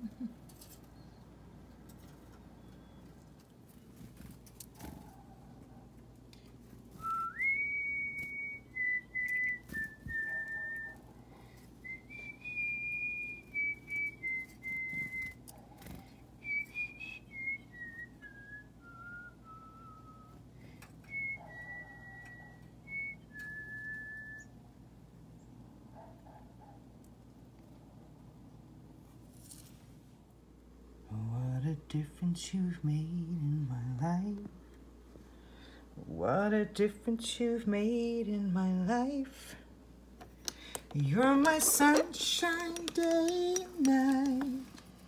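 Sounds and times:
person whistling a slow melody: 7.0 - 11.0, 11.8 - 15.4, 16.4 - 20.4, 21.0 - 24.6.

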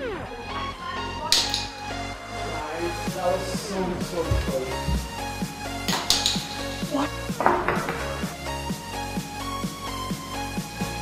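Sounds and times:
background music with steady beat: 0.0 - 11.0
ball knocking over cardboard tube: 7.4 - 8.2.

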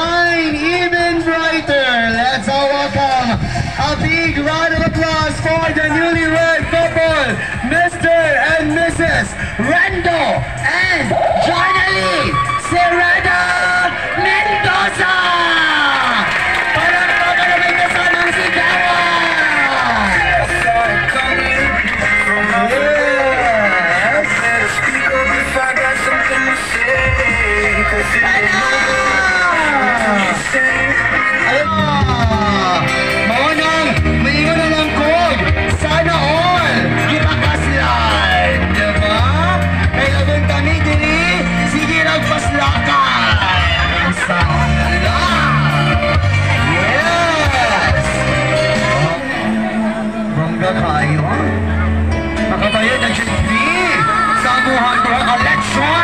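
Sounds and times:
amplified backing music: 0.0 - 56.0
crowd noise: 0.0 - 56.0
song over loudspeakers: 0.0 - 56.0
applause: 13.8 - 22.2.

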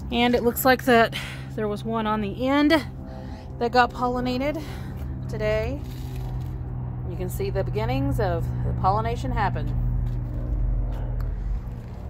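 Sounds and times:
low mechanical hum: 0.0 - 12.0
motor vehicle rumble: 0.0 - 12.0.

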